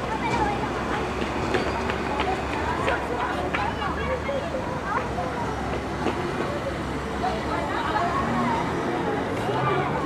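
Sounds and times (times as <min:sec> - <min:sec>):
idling street traffic rumble: 0:00.0 - 0:10.0
people talking in low voices: 0:00.0 - 0:10.0.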